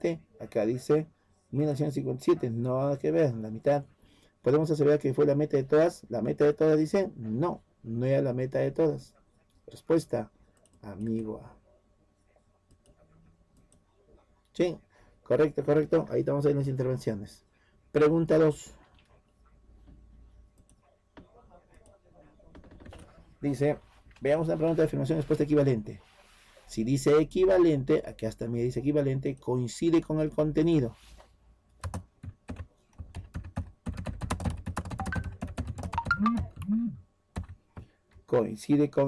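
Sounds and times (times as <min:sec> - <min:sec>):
computer keyboard typing: 0:22.6 - 0:23.1, 0:31.8 - 0:36.8, 0:37.4 - 0:37.9.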